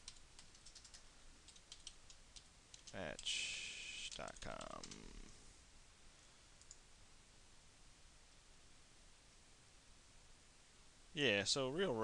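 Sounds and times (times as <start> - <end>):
faint room hiss: 0.0 - 12.0
computer mouse clicks: 6.6 - 6.8.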